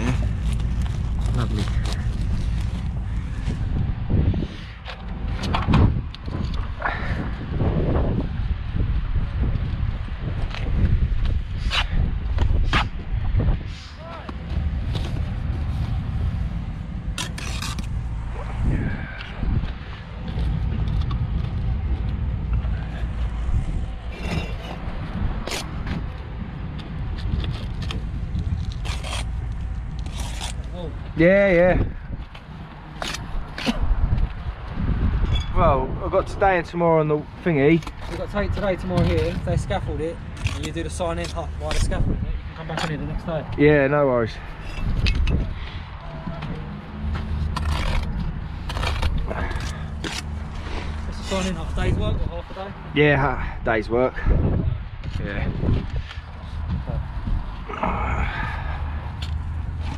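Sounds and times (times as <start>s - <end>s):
steady low rumble: 0.0s - 59.9s
trowel scraping bricks: 17.2s - 17.9s, 47.4s - 51.8s.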